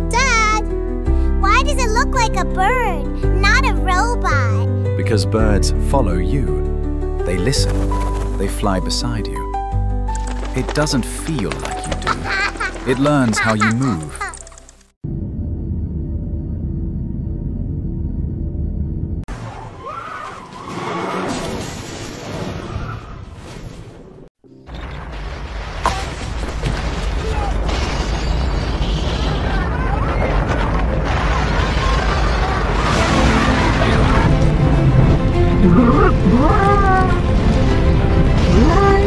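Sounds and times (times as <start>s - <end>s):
background music: 0.0s - 14.8s, 32.7s - 39.0s
tyres skidding over rough ground: 7.4s - 8.6s.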